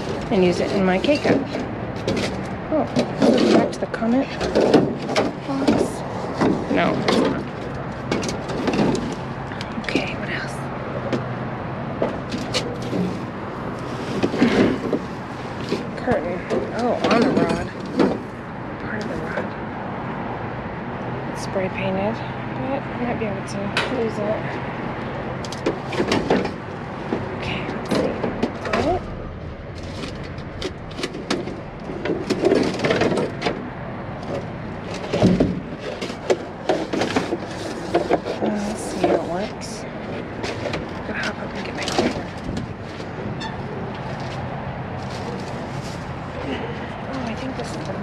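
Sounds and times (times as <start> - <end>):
clatters and rustles: 0.0 - 19.6, 23.8 - 48.0
steady low hum: 0.0 - 48.0
trash rummaged in metal dumpster: 25.6 - 39.5.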